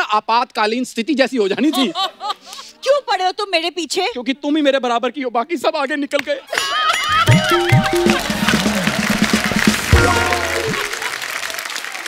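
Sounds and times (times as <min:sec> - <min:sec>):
studio audience applauding: 0:07.0 - 0:12.0
background music: 0:07.1 - 0:11.3.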